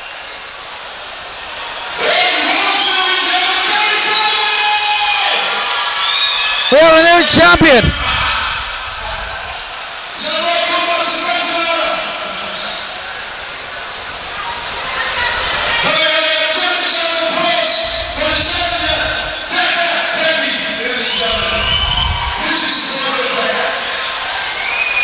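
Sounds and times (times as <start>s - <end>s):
crowd cheering: 0.0s - 25.0s.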